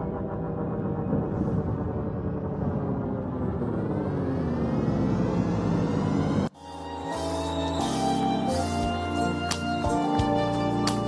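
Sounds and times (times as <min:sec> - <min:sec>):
deep rumble: 0:00.0 - 0:06.6
rising whoosh: 0:00.0 - 0:06.6.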